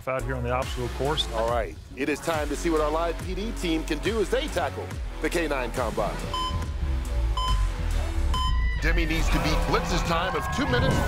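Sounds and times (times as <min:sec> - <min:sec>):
music with deep bass: 0:00.0 - 0:11.0
electronic countdown beeps: 0:06.2 - 0:08.6.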